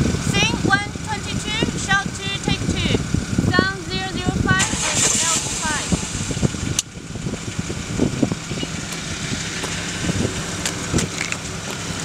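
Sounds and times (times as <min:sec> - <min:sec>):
car engine running: 0:00.0 - 0:12.0
indistinct voices: 0:00.2 - 0:06.6, 0:08.2 - 0:09.1.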